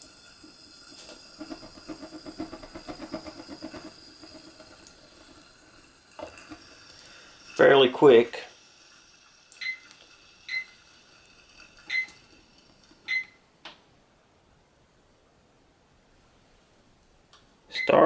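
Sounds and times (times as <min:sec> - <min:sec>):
digital timer beeping: 0:10.5 - 0:10.8.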